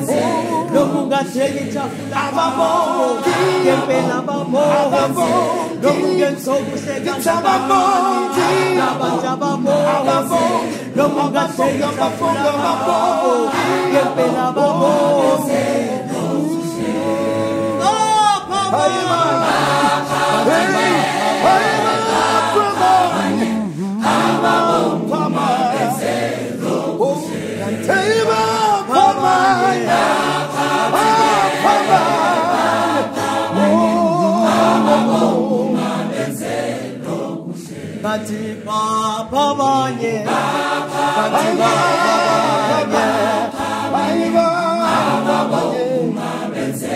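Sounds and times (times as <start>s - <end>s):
choir singing in harmony: 0.0s - 46.9s
low voice holding long note: 23.0s - 26.1s, 33.5s - 35.9s.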